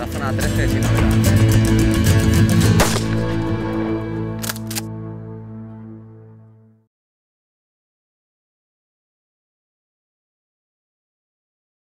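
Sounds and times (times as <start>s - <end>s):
held low music chord: 0.0s - 6.9s
shotgun being racked: 4.4s - 4.9s.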